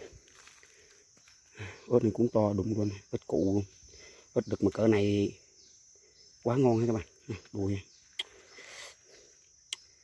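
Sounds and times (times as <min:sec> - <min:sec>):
crickets chirring: 0:00.0 - 0:10.0
man talking: 0:01.8 - 0:03.7, 0:04.4 - 0:05.4, 0:06.4 - 0:07.9.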